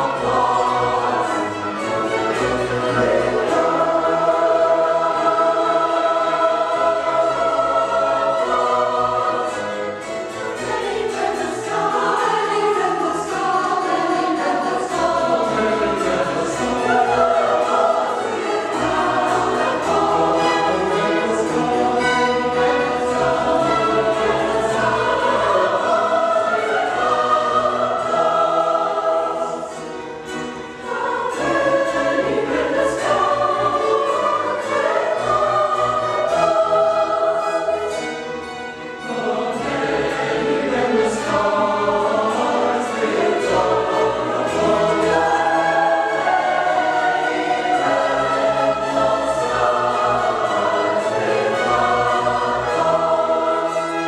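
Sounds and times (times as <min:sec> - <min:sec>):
mixed choir singing: 0:00.0 - 0:54.0
string orchestra: 0:00.0 - 0:54.0.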